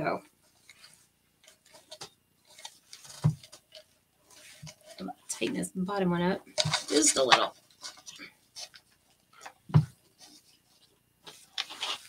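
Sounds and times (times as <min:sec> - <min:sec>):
mesh wreath rustling and scraping: 0:00.5 - 0:05.1, 0:10.2 - 0:12.0.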